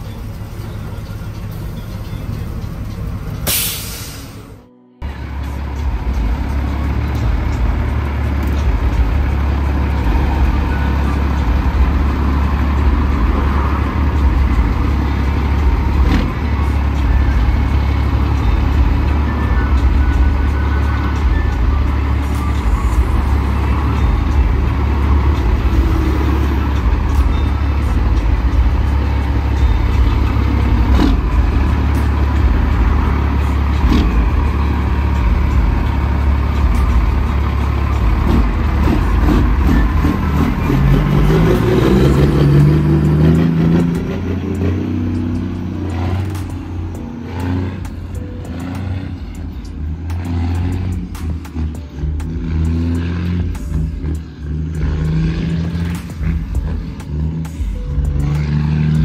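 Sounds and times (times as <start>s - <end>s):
diesel truck engine idling: 0.0s - 59.0s
music with bass line and beat: 5.0s - 59.0s.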